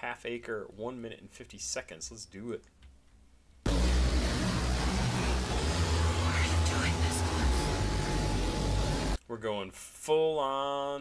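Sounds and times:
distorted beat with deep bass: 0:03.7 - 0:09.2.

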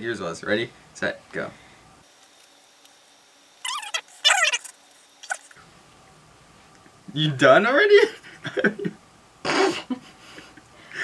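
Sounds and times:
high-pitched squeaky voices: 0:03.6 - 0:05.6.

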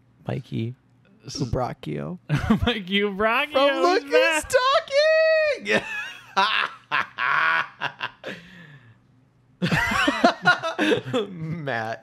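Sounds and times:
men laughing: 0:02.3 - 0:02.8, 0:05.6 - 0:08.8, 0:09.6 - 0:11.6.

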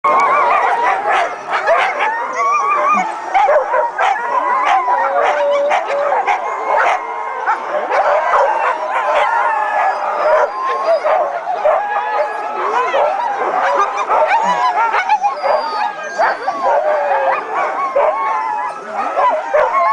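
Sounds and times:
sled dogs barking and howling: 0:00.0 - 0:19.9.

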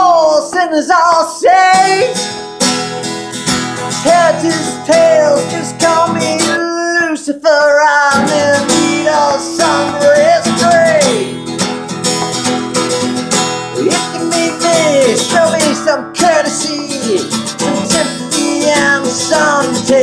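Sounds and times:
man singing wordlessly: 0:00.0 - 0:02.3, 0:03.8 - 0:11.5, 0:13.8 - 0:20.0
acoustic guitar strumming: 0:01.7 - 0:06.8, 0:08.1 - 0:20.0.

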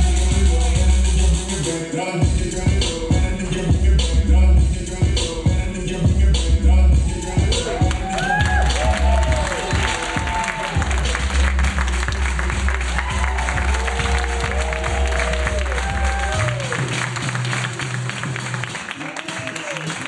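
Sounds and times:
hip-hop music with heavy bass: 0:00.0 - 0:18.9
audience shouting: 0:07.2 - 0:10.9
audience applause: 0:07.8 - 0:20.0.

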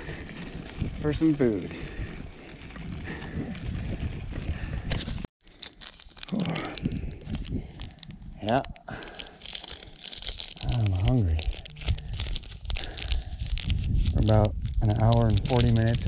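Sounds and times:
bike rolling on dirt road: 0:00.0 - 0:05.3, 0:11.1 - 0:16.0
wind on microphone: 0:00.0 - 0:05.3, 0:06.5 - 0:08.8, 0:11.2 - 0:16.0
wrapper tearing and crinkling: 0:05.4 - 0:16.0.

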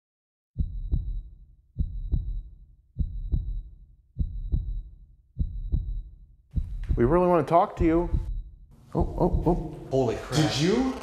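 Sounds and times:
heartbeat thumps: 0:00.6 - 0:10.5.

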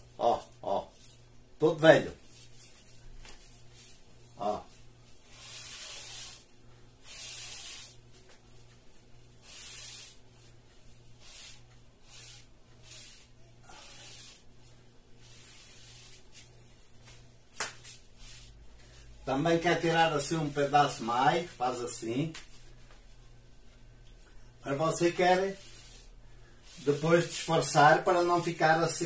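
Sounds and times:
steady low hum: 0:00.0 - 0:29.0
sponge scratching on drywall: 0:05.2 - 0:08.0, 0:09.4 - 0:10.2, 0:24.7 - 0:28.3.

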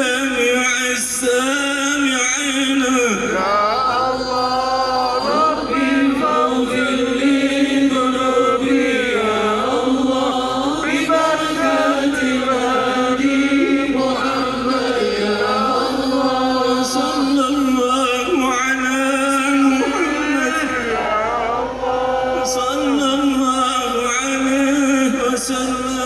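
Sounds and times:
men chanting over loudspeakers: 0:00.0 - 0:26.0.

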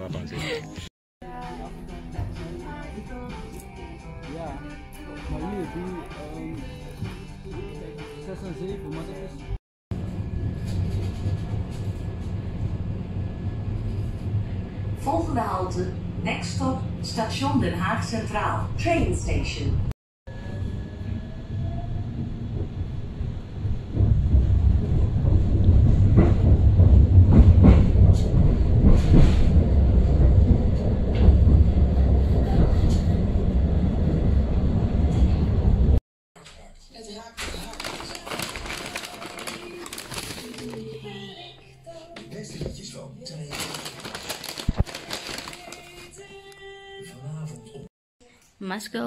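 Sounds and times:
tram rumbling on rails: 0:09.4 - 0:36.0.

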